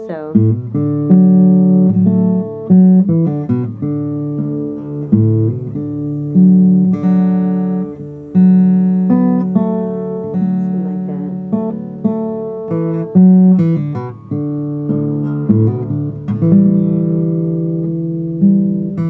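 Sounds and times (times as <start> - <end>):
acoustic guitar strummed chords: 0.0 - 19.0.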